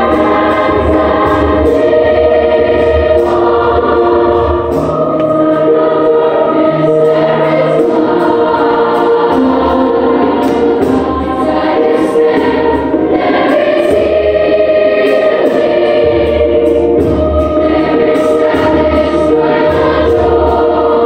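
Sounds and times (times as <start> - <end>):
youth choir singing: 0.0 - 21.0.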